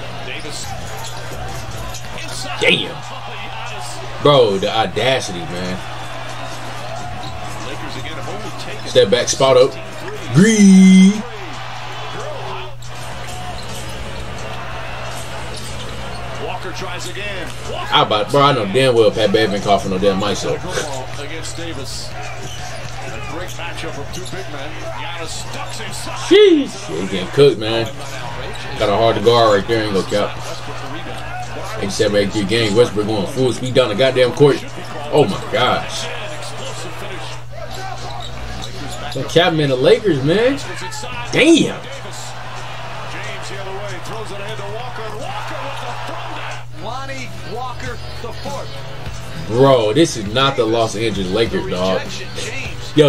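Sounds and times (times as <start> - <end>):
arena crowd noise: 0.0 - 53.0
commentator speaking: 2.2 - 5.8, 7.7 - 11.3, 16.5 - 22.2, 23.1 - 37.4, 38.9 - 42.4, 46.7 - 53.0.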